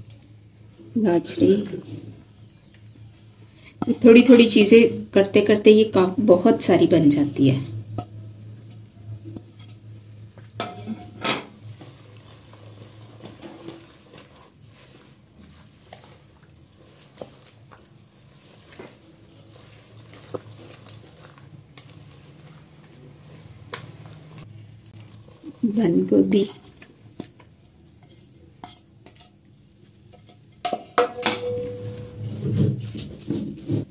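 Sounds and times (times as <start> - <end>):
whisk stirring thick salad dressing: 7.9 - 9.9, 11.6 - 30.4.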